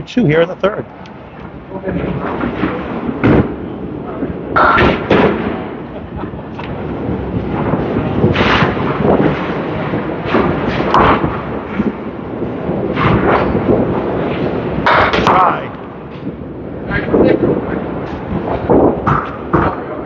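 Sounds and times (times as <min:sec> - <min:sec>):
bowling balls rolling on wooden lanes: 0:00.3 - 0:20.0.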